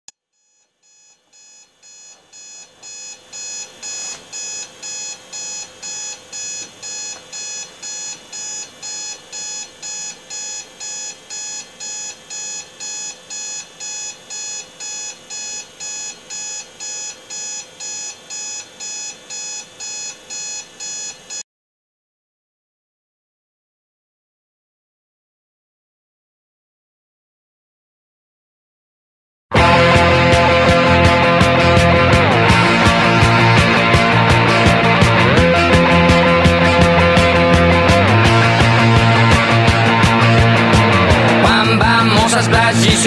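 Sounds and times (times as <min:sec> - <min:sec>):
alarm clock beeping: 0:00.4 - 0:21.4.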